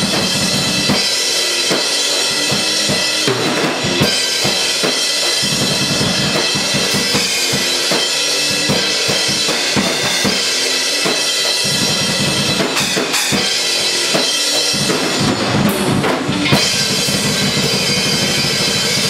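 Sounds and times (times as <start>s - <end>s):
drum kit beat: 0.0s - 19.0s
electric guitar through small amp: 0.0s - 19.0s.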